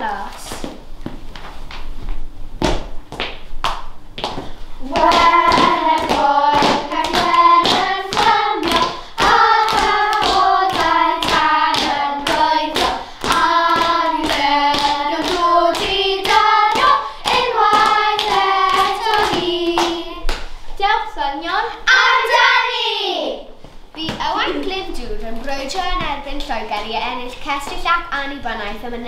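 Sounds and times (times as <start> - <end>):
children singing in unison: 4.8 - 20.2.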